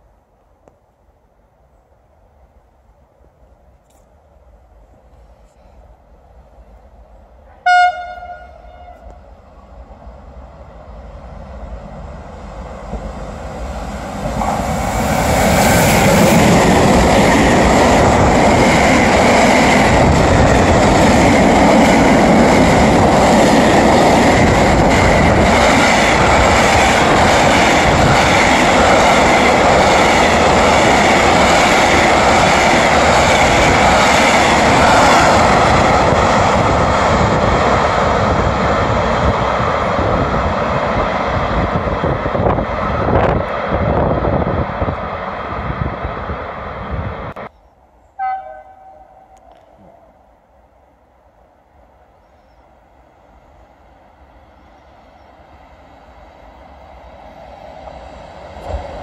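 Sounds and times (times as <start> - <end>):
freight train passing: 0.0 - 59.0.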